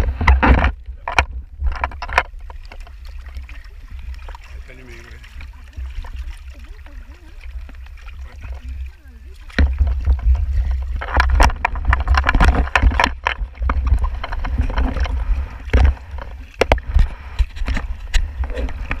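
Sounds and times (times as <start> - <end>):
water sloshing against camera housing: 0.0 - 19.0.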